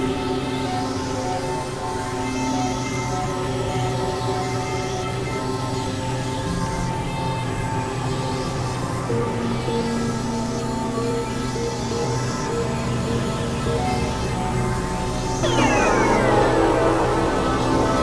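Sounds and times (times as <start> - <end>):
falling pitch sweeps: 15.4 - 18.0
synthesizer drone music: 15.4 - 18.0.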